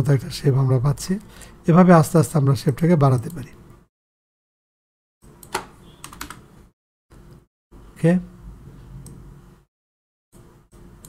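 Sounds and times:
computer keys clicking: 0:05.4 - 0:06.4.

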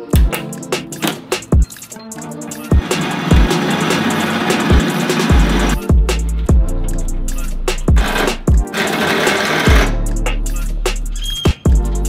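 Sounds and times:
held bass line: 0:02.4 - 0:12.0
kick drum beat: 0:02.7 - 0:03.6, 0:04.7 - 0:06.8, 0:07.9 - 0:08.7, 0:09.7 - 0:09.9, 0:11.6 - 0:11.9.

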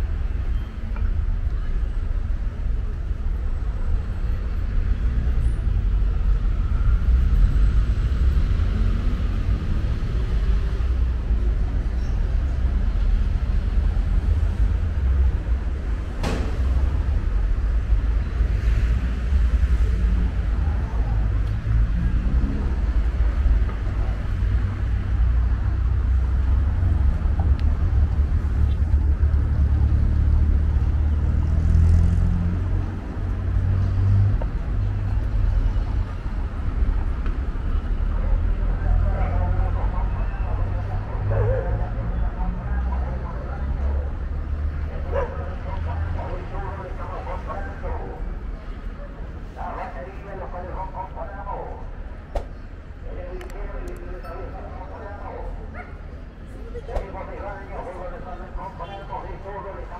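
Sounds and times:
steady low traffic rumble: 0:00.0 - 0:59.9
cars passing: 0:02.5 - 0:59.9.

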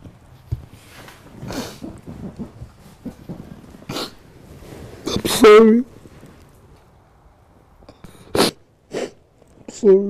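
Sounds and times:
catching breaths: 0:00.9 - 0:05.4.

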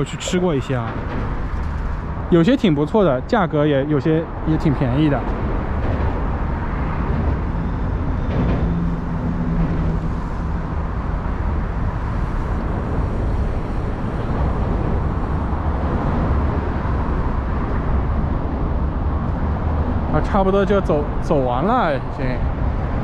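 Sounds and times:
city traffic noise: 0:00.0 - 0:23.0.

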